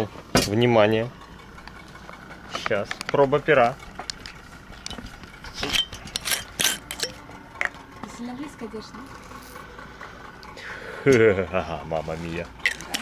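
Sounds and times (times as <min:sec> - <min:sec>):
glassware clinking: 0:05.6 - 0:07.7.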